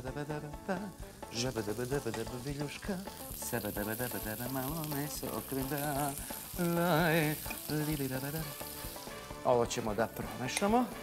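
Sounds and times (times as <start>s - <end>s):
background music: 0.0s - 11.0s
meatballs sizzling in hot oil: 0.1s - 11.0s.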